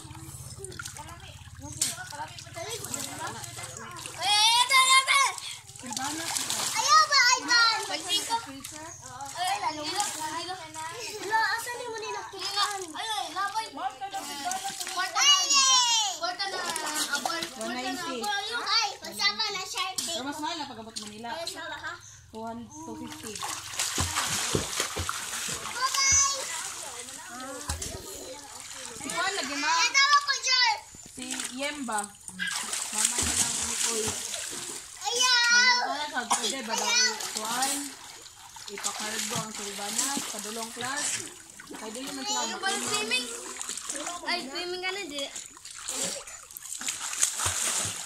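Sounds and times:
water splashing: 0.0 - 21.4, 23.0 - 48.0
children squealing and calling out: 4.2 - 5.6, 25.4 - 30.9, 32.3 - 32.8, 35.0 - 36.0.

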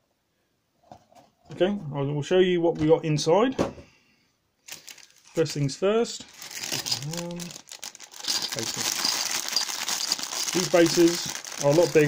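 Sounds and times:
plastic bag crinkling: 4.6 - 5.6, 6.3 - 12.0.

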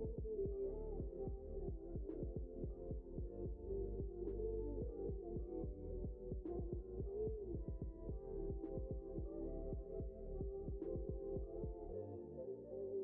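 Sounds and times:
background music with low beat: 0.0 - 11.9.

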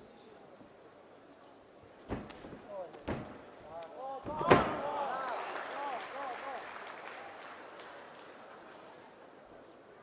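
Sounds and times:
bodies thudding in fight ring: 2.0 - 3.5
body slam onto ring canvas: 2.0 - 3.5.

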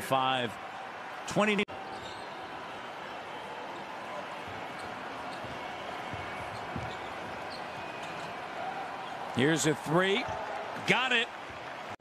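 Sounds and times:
arena noise: 0.0 - 12.0
basketball bouncing on hardwood: 5.4 - 7.4.

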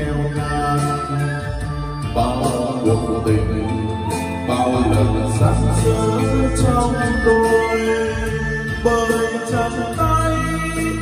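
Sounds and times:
karaoke backing music: 0.0 - 11.0.

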